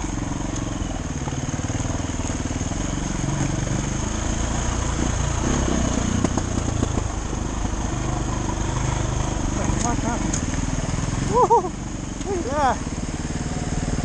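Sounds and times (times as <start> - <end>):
dirt bike engine at low revs: 0.0 - 14.0.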